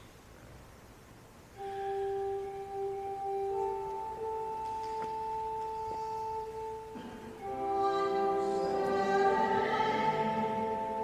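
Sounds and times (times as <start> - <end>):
pipe organ flute-like notes: 1.6 - 11.0.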